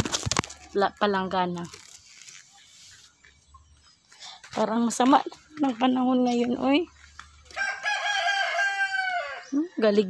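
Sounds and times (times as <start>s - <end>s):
rooster crowing: 7.5s - 9.6s.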